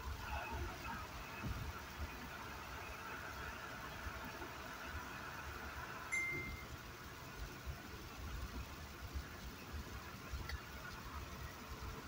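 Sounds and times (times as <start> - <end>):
road and engine noise inside car: 0.0 - 12.0
short high electronic beep: 6.1 - 6.7.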